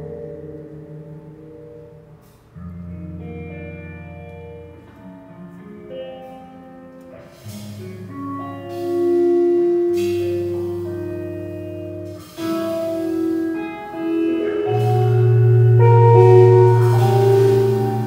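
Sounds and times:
jazz group playing: 0:00.0 - 0:18.0.

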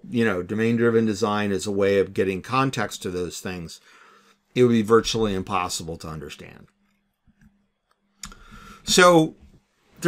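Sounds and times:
man speaking: 0:00.0 - 0:03.8, 0:04.6 - 0:06.7, 0:08.8 - 0:10.0.

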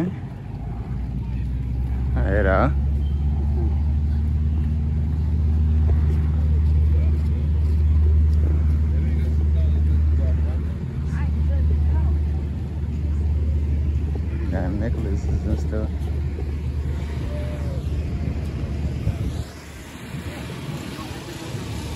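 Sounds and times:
faint voices: 0:00.0 - 0:21.9
low engine hum: 0:00.0 - 0:21.9.

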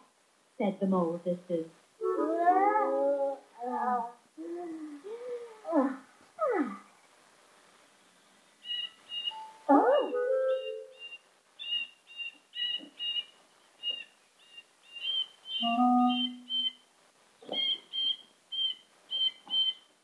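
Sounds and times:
cartoon bird high chirps: 0:08.7 - 0:13.2, 0:15.0 - 0:16.8, 0:17.4 - 0:19.8.

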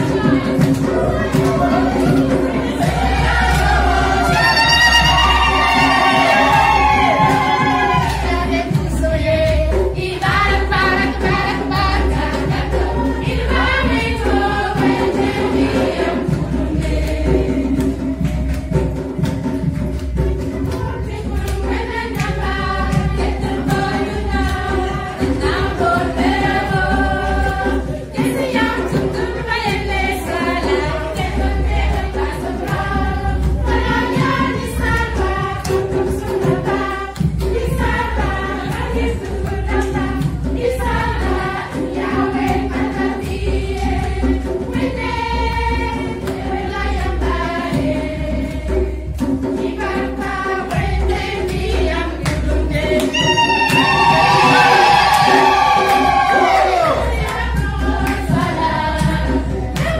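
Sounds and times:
steady beat: 0:00.0 - 0:18.5, 0:49.7 - 0:59.9
group of voices singing: 0:00.0 - 0:59.9.

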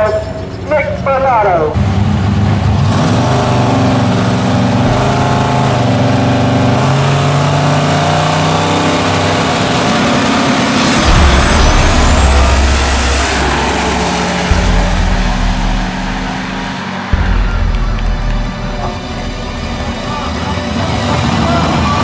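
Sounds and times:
drag race car engines revving: 0:00.0 - 0:22.0.

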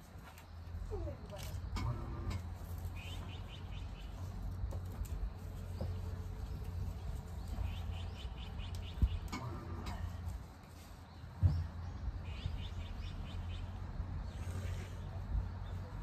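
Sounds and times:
small bird chirping: 0:11.1 - 0:15.9.

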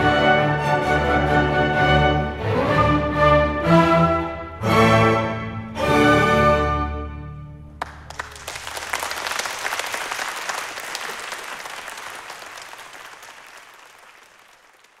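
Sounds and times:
audience applause: 0:07.8 - 0:15.0.

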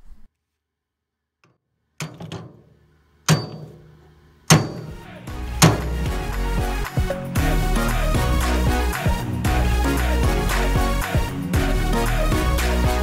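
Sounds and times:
hammer striking metal: 0:02.0 - 0:02.7, 0:03.3 - 0:06.2
background music with bass: 0:04.7 - 0:13.0.

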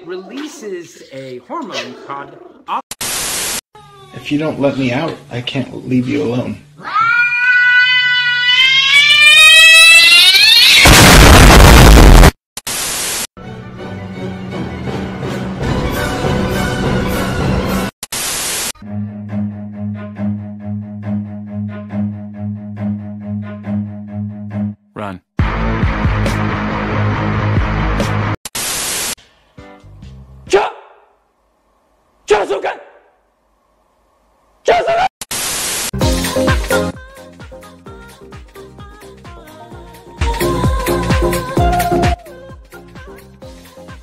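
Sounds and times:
static hiss: 0:03.0 - 0:03.7, 0:10.8 - 0:13.3, 0:18.0 - 0:18.8, 0:28.5 - 0:29.2, 0:35.3 - 0:36.0
explosion blast with deep rumble: 0:10.8 - 0:12.3.

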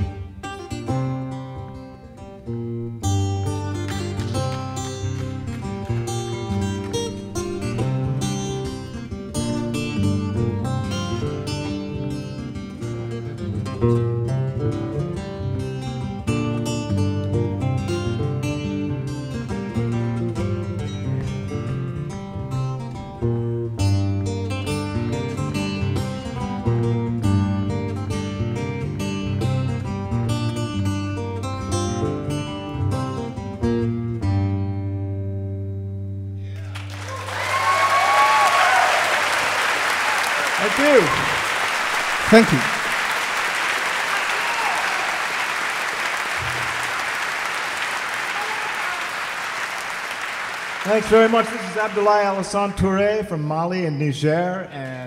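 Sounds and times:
acoustic guitar duet: 0:00.0 - 0:36.8
audience applause: 0:03.8 - 0:07.1, 0:36.6 - 0:52.8.

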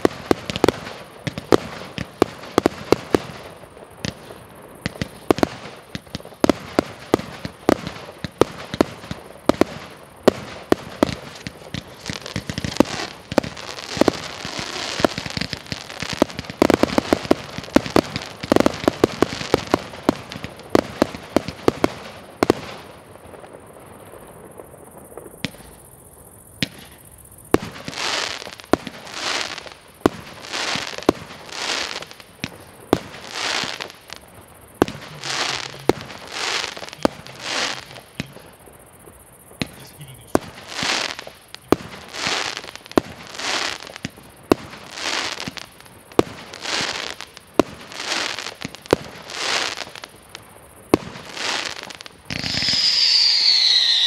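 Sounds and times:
fireworks shots and bursts: 0:00.0 - 0:25.9, 0:26.5 - 0:54.0
small firework pops: 0:00.0 - 0:26.0, 0:26.6 - 0:54.0.

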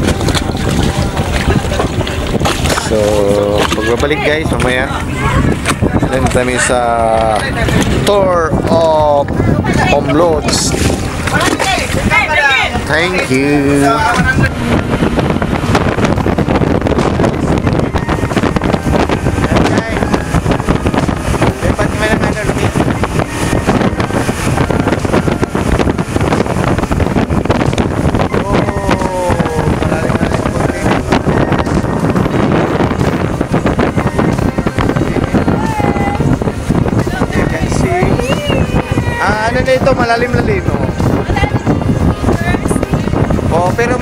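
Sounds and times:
motorboat running: 0:00.0 - 0:44.0
wind buffeting microphone: 0:00.0 - 0:44.0.

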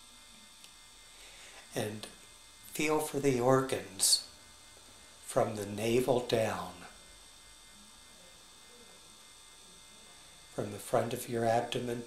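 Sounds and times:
faint electrical hum and hiss: 0:00.0 - 0:12.0.

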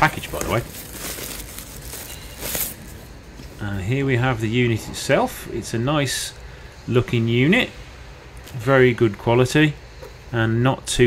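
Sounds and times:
plastic wrapping crinkling: 0:00.0 - 0:03.1.

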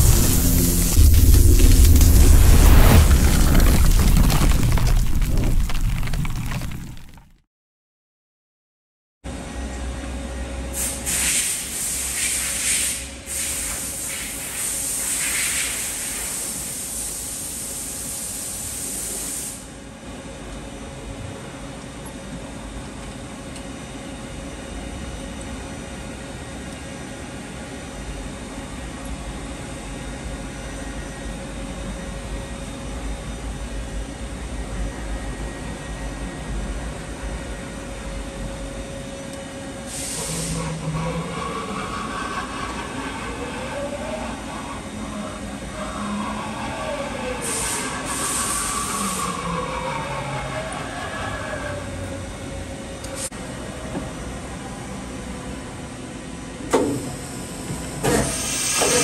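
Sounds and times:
machining center hum and whine: 0:00.0 - 0:04.1, 0:09.3 - 0:59.0
loud hiss: 0:00.0 - 0:04.7, 0:10.8 - 0:19.7, 0:39.8 - 0:40.7, 0:47.4 - 0:49.4, 0:58.1 - 0:59.0.

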